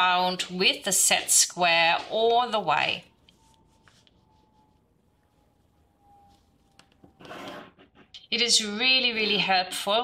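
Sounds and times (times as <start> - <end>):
pencil scratching on paper: 7.2 - 8.1.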